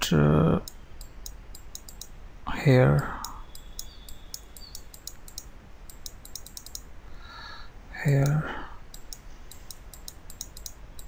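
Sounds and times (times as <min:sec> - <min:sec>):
faint steady hum: 0:00.0 - 0:11.0
computer mouse clicks: 0:00.6 - 0:02.2, 0:03.0 - 0:06.9, 0:08.2 - 0:11.0.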